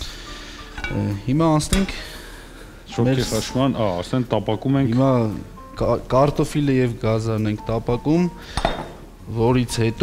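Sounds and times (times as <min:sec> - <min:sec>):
glass carafe clinking on counter: 0:08.6 - 0:09.0.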